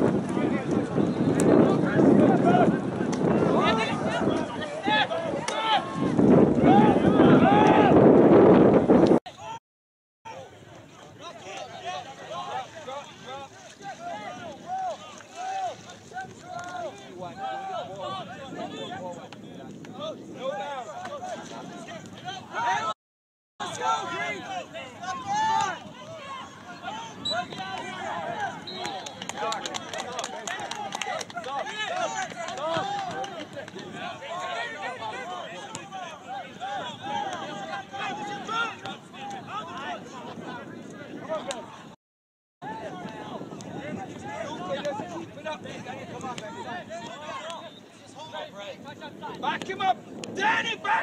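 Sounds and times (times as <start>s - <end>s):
people calling and shouting: 0.0s - 8.3s, 10.3s - 23.0s, 23.6s - 42.0s, 42.6s - 51.0s.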